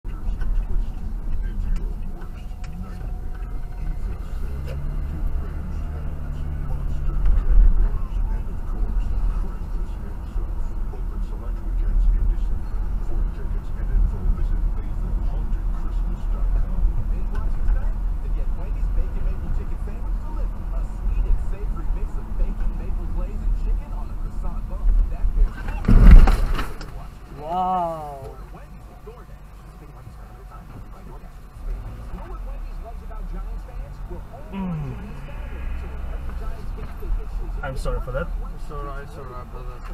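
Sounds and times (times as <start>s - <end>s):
car driving rumble: 0.0s - 39.9s
loud sudden noise: 25.8s - 26.8s.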